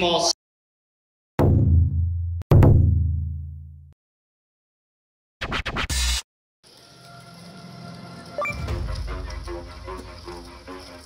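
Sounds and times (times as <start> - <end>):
record scratch: 5.4 - 6.2
background music: 6.8 - 11.0.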